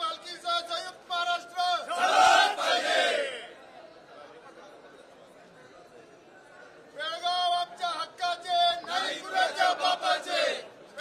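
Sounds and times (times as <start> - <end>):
crowd of men shouting together: 1.7 - 3.5, 8.9 - 10.7.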